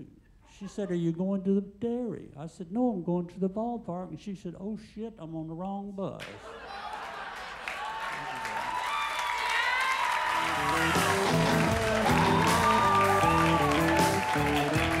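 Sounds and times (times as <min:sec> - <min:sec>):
audience laughing: 0:06.2 - 0:08.8, 0:10.4 - 0:15.0
audience applauding: 0:06.4 - 0:15.0
walk-off music: 0:10.3 - 0:15.0.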